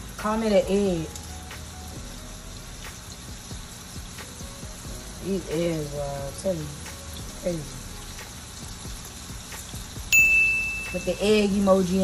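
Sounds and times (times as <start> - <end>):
chicken sizzling in oil: 0.0 - 12.0
high electronic beep: 10.1 - 11.2.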